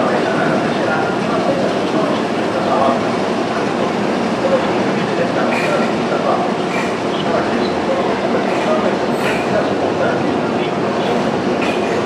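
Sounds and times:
roller coaster rolling on rails: 0:00.0 - 0:12.0.

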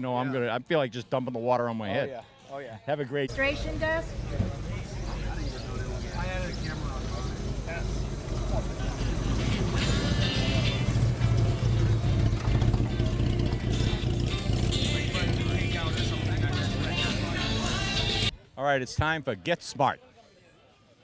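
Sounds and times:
crowd chatter: 0:01.8 - 0:21.0
car engine running: 0:03.3 - 0:18.3
music: 0:09.4 - 0:18.4.

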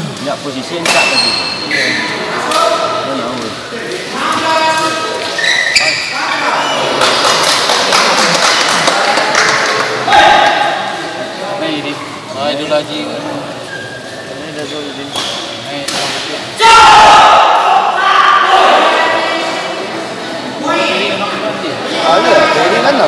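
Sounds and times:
people shouting: 0:10.0 - 0:11.0, 0:16.6 - 0:19.6.

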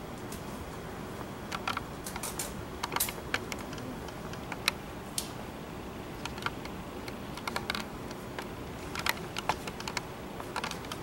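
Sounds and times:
laptop keys clicking: 0:01.5 - 0:04.8, 0:06.2 - 0:11.0.

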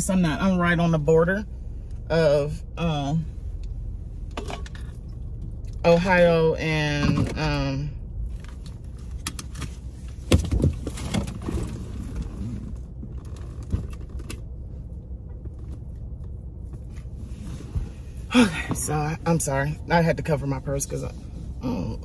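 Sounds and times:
low rumble in car cabin: 0:00.0 - 0:22.0.

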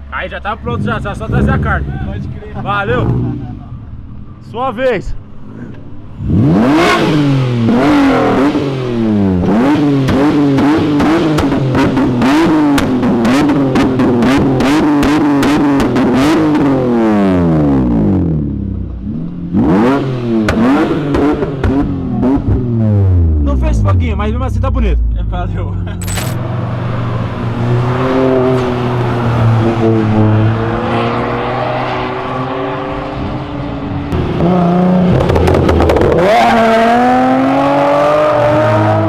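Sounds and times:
car engine revving: 0:00.0 - 0:04.6, 0:05.2 - 0:39.0.

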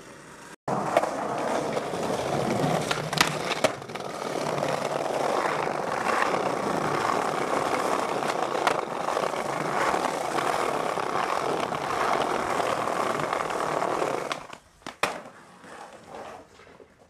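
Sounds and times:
skateboard wheels rolling on paving: 0:00.0 - 0:17.0
sharp skateboard clack: 0:00.4 - 0:09.0, 0:09.7 - 0:17.0.

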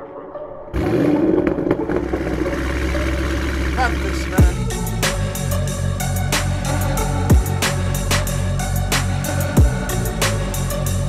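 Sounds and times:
deep bass drone: 0:00.7 - 0:11.0.

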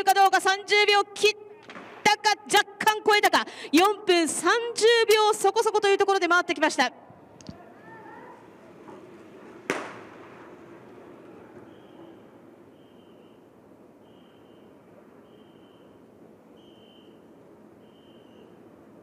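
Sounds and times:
pistol shot bang: 0:09.7 - 0:10.1.

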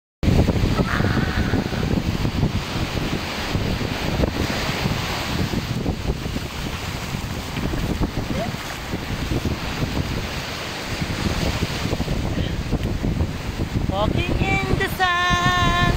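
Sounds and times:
surf breaking on shore: 0:00.2 - 0:15.9
wind buffeting microphone: 0:00.2 - 0:15.9.

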